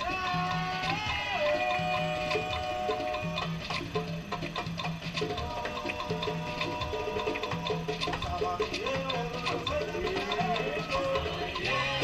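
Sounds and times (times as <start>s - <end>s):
hand percussion beat: 0.0s - 12.0s
latin dance music: 0.0s - 12.0s.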